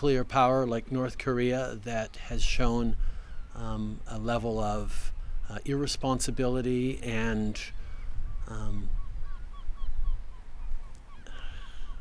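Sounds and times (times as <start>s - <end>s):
bird calling in short repeated calls: 7.8s - 12.0s.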